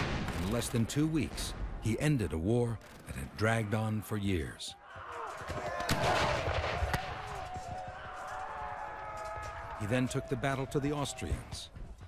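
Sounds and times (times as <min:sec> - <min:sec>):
continuous battle din: 0:00.0 - 0:12.0
musket shots: 0:05.8 - 0:07.5.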